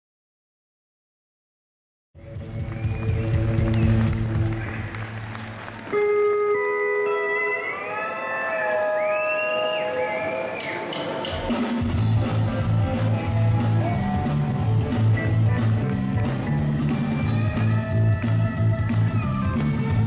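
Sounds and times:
country band playing: 5.9 - 9.0, 11.1 - 20.0.

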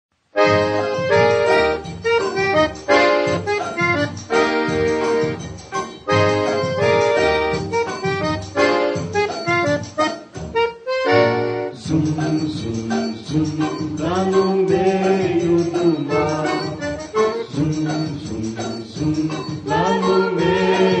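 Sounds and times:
instrumental melody from record: 0.2 - 21.0.

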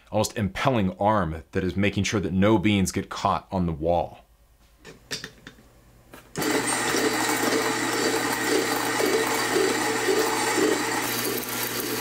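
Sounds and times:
coffee grinder grinding beans: 6.4 - 12.0
motor hum: 6.4 - 12.0.

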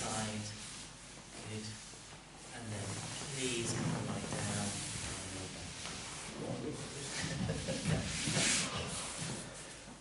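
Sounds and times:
breathing: 8.6 - 10.0.

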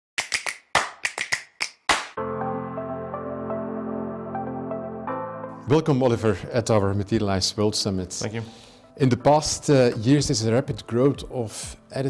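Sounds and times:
sharp claps: 0.2 - 2.2.

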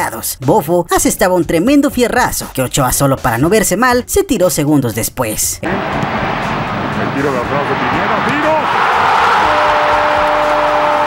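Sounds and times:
stadium crowd roaring: 5.6 - 11.0.

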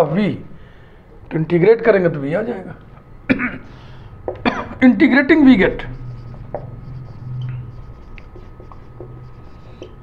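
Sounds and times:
marker writing on whiteboard: 5.6 - 10.0.

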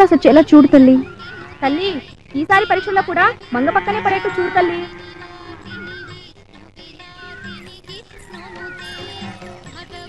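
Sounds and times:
soft film music: 7.0 - 10.0.

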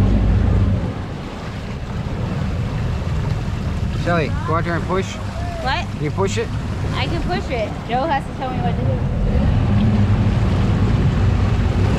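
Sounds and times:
outboard motors rumbling: 0.0 - 11.9
water churning: 0.0 - 11.9
wind buffeting microphone: 0.0 - 11.9.

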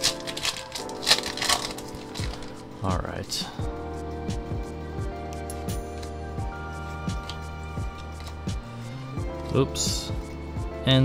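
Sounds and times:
foil wrapper crinkling and tearing: 0.0 - 2.9
background music with held notes: 0.0 - 11.0.

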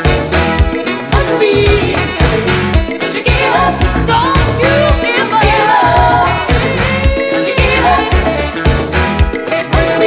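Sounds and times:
pop dance music: 0.0 - 10.0.

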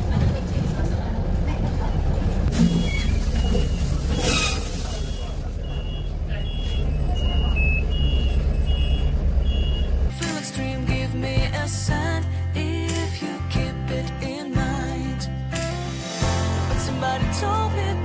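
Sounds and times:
bus engine rumble: 0.0 - 12.4
two-tone electronic beep: 5.0 - 9.9
music: 10.1 - 18.0.

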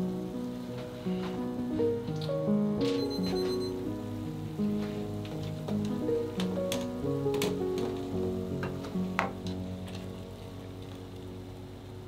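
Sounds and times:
background music: 0.0 - 12.0
sauce simmering in a pan: 8.2 - 12.0.

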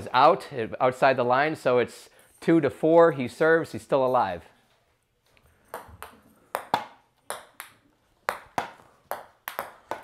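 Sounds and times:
ping pong ball ticks: 5.7 - 10.0.

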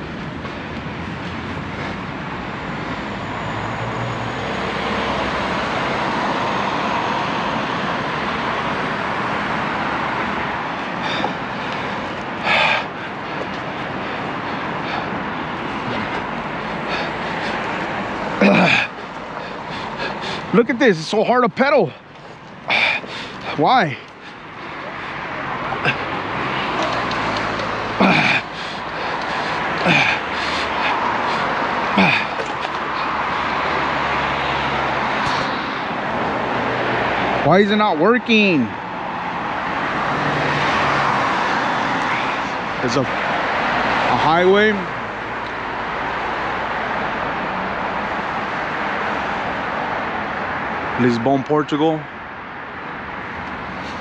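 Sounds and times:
passing traffic: 0.0 - 54.0
road noise: 0.0 - 54.0
rushing wind: 0.0 - 54.0
bicycle tyres on pavement: 13.4 - 37.5.

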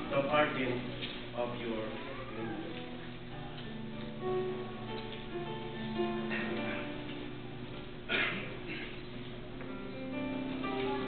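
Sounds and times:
instrumental background music: 2.6 - 7.2.

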